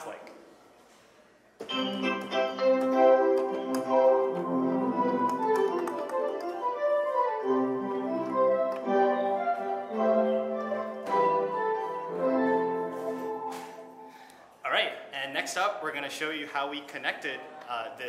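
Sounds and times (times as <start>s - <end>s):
synthesizer chords: 1.7s - 14.2s.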